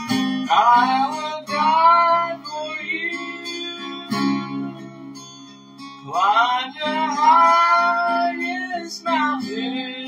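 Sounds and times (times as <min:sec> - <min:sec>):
strummed acoustic guitar: 0:00.0 - 0:10.0
person singing: 0:00.4 - 0:10.0.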